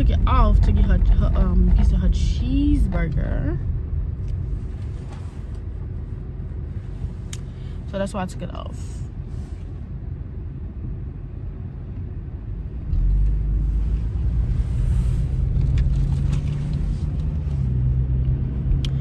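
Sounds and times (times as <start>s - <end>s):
car engine and road rumble: 0.0s - 19.0s.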